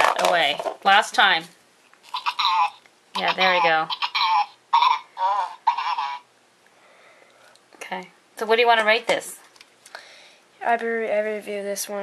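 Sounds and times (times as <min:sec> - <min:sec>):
toy babbling through speaker: 0:02.1 - 0:06.3.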